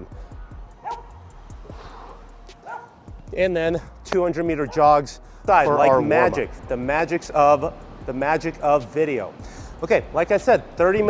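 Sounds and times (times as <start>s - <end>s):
faint background music: 0.0s - 11.0s
dog yipping: 0.8s - 1.2s, 2.6s - 3.0s, 4.6s - 5.0s.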